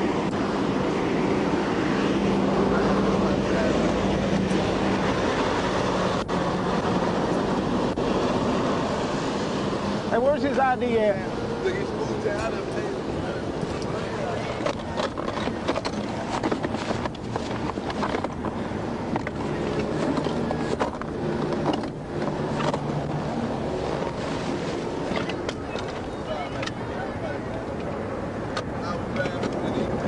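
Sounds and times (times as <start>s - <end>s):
engine noise: 0.0s - 30.0s
wind noise: 0.0s - 30.0s
muffled voices: 10.1s - 16.8s, 25.2s - 30.0s
microphone rustling and knocking: 14.6s - 23.1s.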